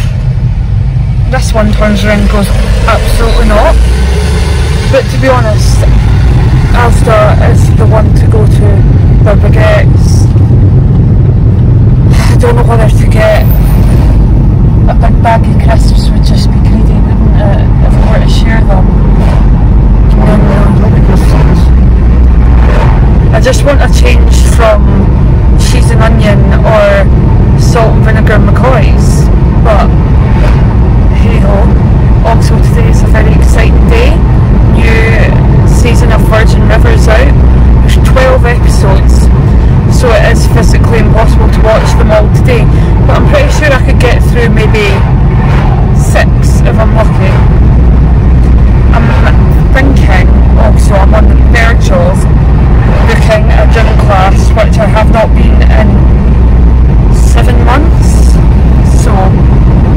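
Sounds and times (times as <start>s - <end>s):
car road and engine rumble: 0.0s - 59.9s
person talking: 1.3s - 3.8s, 4.9s - 6.0s, 6.7s - 10.3s, 12.1s - 13.6s, 14.8s - 18.9s, 20.1s - 21.7s, 23.3s - 29.9s, 31.1s - 39.3s, 39.9s - 45.1s, 46.0s - 47.4s, 48.9s - 52.2s, 53.0s - 56.1s, 57.1s - 59.4s.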